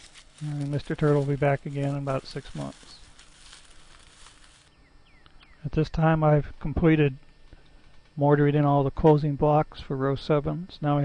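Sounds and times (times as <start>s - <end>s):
tortoise walking on dry leaves: 0.0s - 4.8s
bird chirp: 4.6s - 5.7s.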